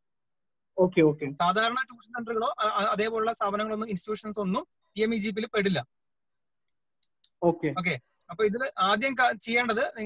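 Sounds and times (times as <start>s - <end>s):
person speaking over online call: 0.6s - 6.1s, 7.0s - 10.0s.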